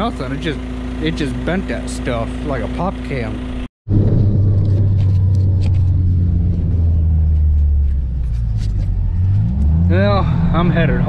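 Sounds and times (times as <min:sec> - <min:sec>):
vehicle engine droning: 0:00.0 - 0:11.0.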